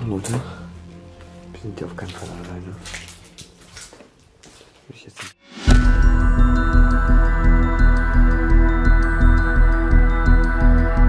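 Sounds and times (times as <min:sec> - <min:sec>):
ambient music with ringing tones: 0:00.0 - 0:04.6, 0:05.4 - 0:11.0
faint scuffs and rustles: 0:00.2 - 0:05.4.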